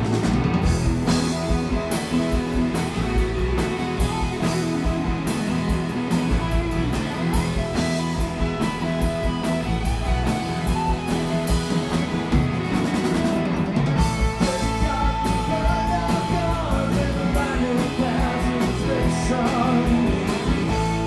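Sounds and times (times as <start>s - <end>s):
bass: 0.0s - 21.0s
drums: 0.0s - 21.0s
electric guitar lead: 0.0s - 21.0s.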